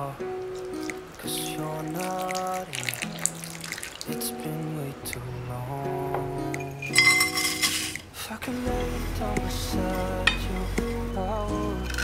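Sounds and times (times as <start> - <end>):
background song: 0.0 - 12.0.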